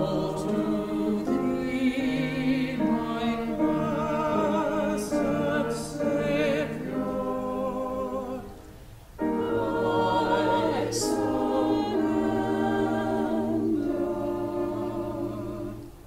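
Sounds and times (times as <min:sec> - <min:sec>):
choir singing: 0:00.0 - 0:16.0.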